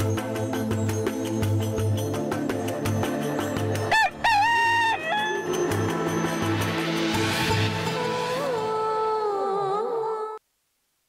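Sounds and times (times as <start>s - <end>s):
background music: 0.0s - 10.4s
rooster crowing: 3.9s - 5.6s.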